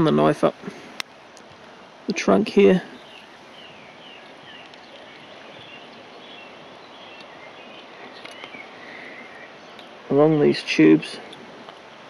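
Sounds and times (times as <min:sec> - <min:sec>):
steady low hiss: 0:00.0 - 0:12.0
faint bird chirps: 0:02.8 - 0:10.2.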